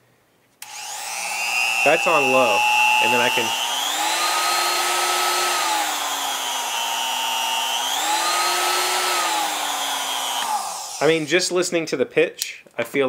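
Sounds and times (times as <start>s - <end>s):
router motor whine: 0.6s - 11.3s.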